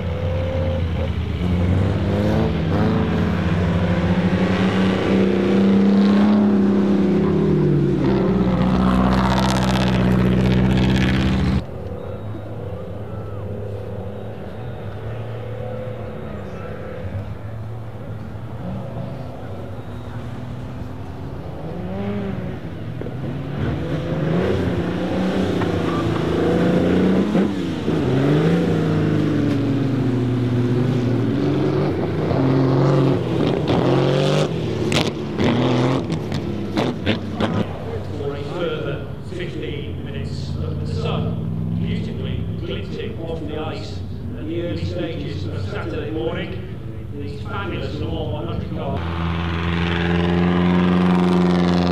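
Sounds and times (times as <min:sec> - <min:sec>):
car engine revving: 0:00.0 - 0:51.9.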